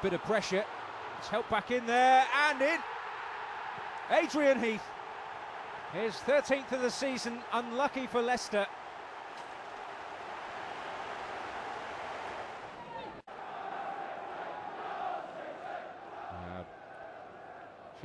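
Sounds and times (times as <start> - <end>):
stadium crowd cheering: 0.0 - 18.0
crowd chanting: 13.3 - 17.9.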